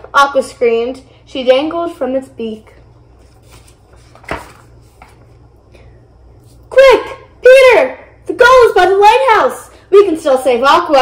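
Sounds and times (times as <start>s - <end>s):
low room hum: 0.0s - 11.0s
page turning swish: 3.2s - 5.4s.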